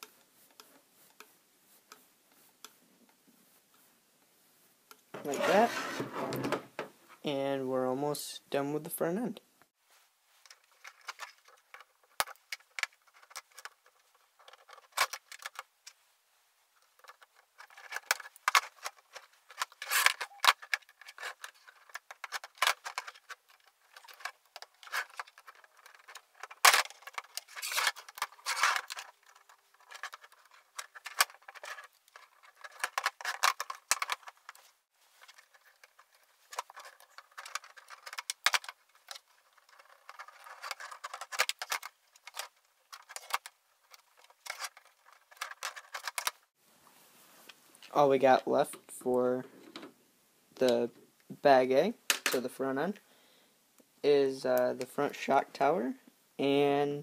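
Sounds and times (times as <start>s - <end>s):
metal tools rattling on plastic: 17.0s - 34.6s, 35.3s - 46.4s.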